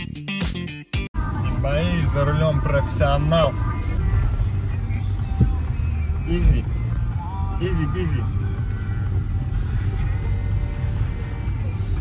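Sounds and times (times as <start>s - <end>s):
car road rumble on dirt road: 1.2s - 12.0s.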